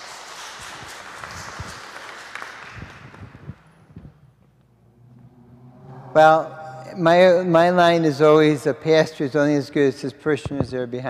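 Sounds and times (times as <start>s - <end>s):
small group clapping: 0.0s - 3.8s.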